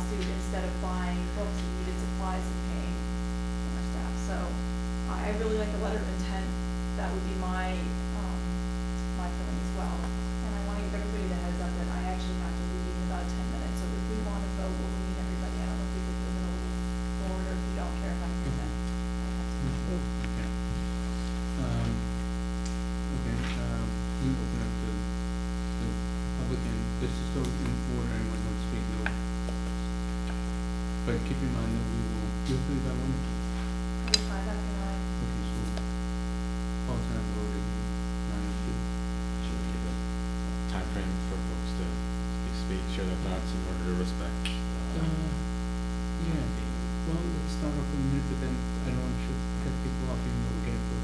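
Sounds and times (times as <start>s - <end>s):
electrical mains hum: 0.0s - 51.0s
faint murmuring voices: 19.6s - 22.0s.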